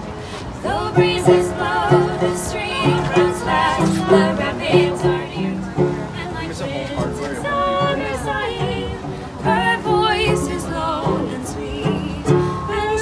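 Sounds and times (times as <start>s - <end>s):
plucked banjo: 0.0s - 13.0s
woman singing folk song: 0.3s - 13.0s.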